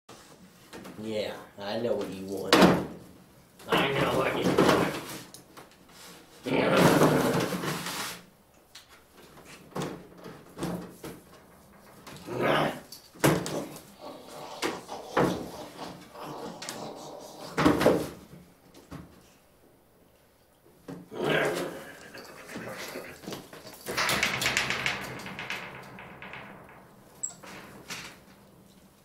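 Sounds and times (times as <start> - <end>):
monkey scrambling on wooden roof: 22.0 - 29.0.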